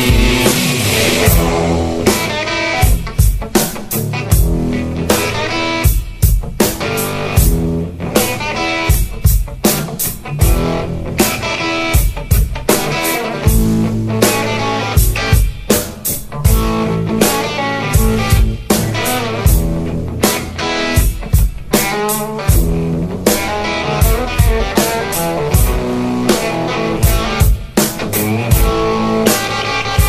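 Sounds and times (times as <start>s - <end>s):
drum kit beat: 0.0s - 30.0s
rock music with electric guitar: 0.0s - 30.0s.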